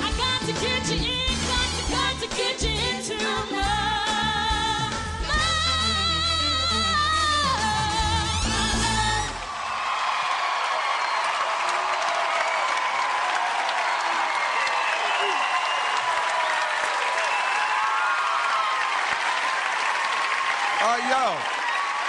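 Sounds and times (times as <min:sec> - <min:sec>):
band and singer: 0:00.0 - 0:09.5
shouts and whoops: 0:09.4 - 0:22.0
audience clapping: 0:09.5 - 0:22.0.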